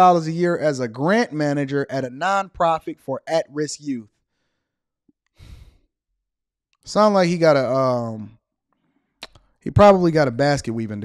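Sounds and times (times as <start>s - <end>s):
faint mouth click: 9.2s - 9.4s.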